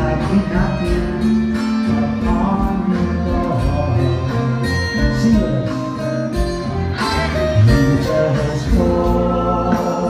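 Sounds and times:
bass: 0.0s - 10.0s.

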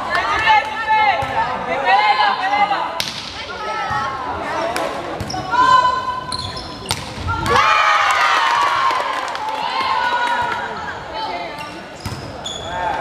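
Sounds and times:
shoe squeaks: 6.2s - 7.0s, 11.6s - 12.8s.

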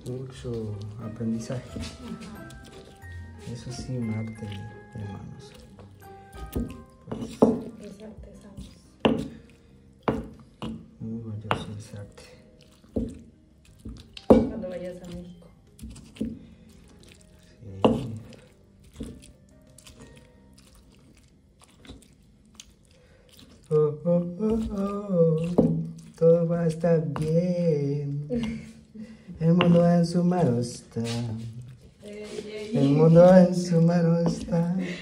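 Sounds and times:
stone pestle pounding and grinding: 0.0s - 31.9s, 32.8s - 35.0s.

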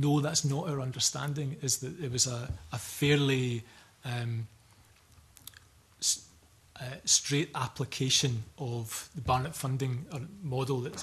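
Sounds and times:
man saying uh: 0.3s - 4.5s.

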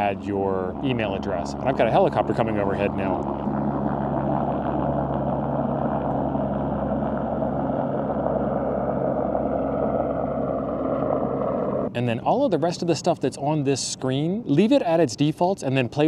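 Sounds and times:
helicopter flying overhead: 0.0s - 16.0s.

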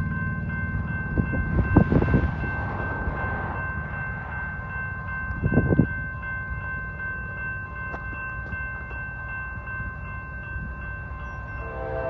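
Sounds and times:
diesel locomotive engine rumbling: 0.0s - 12.0s.

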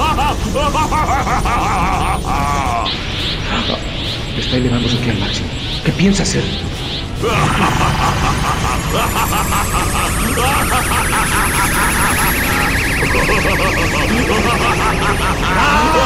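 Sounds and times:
faint high whine: 0.0s - 16.0s
sustained pitched tone: 0.0s - 16.0s.

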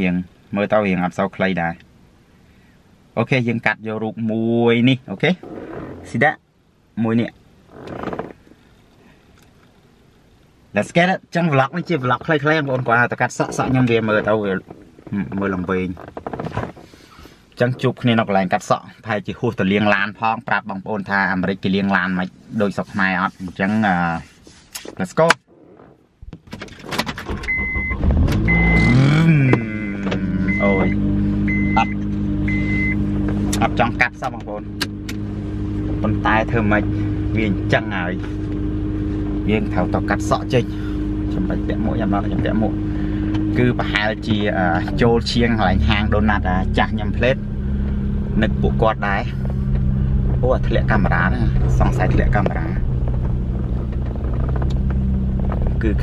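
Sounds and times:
car engine starting and idling: 0.0s - 18.6s, 25.5s - 56.0s
dashboard warning chime beeping: 27.4s - 33.2s.

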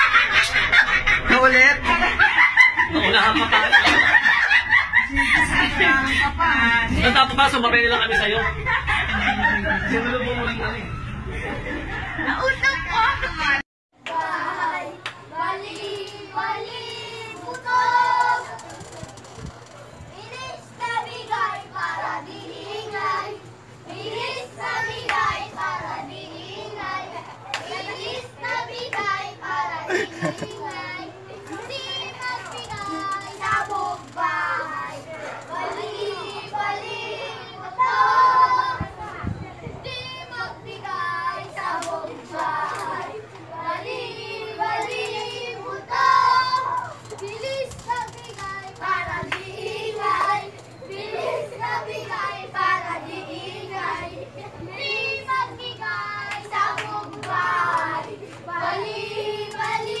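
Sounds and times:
steady low hum: 0.0s - 60.0s
children calling out and chattering: 14.3s - 60.0s.

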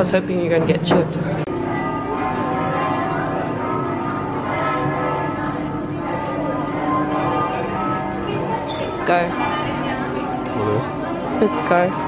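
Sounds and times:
bells ringing: 0.0s - 12.0s.

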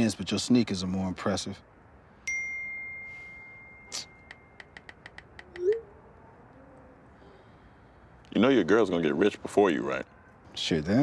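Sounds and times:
light phone keyboard taps: 4.3s - 5.6s.

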